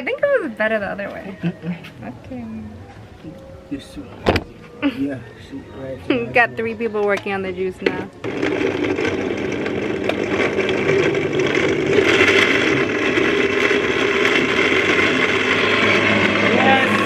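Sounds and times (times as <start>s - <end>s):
electric blender chopping: 7.8s - 17.0s.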